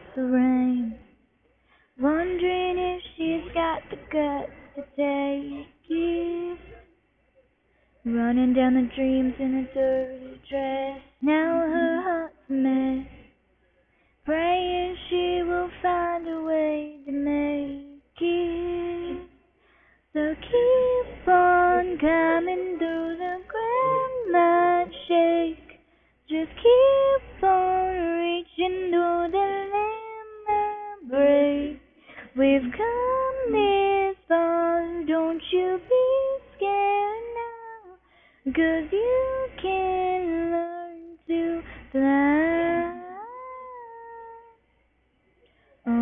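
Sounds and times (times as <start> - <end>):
girl singing unaccompanied: 0.0 - 1.1, 2.0 - 6.9, 8.0 - 13.2, 14.3 - 19.4, 20.1 - 44.6.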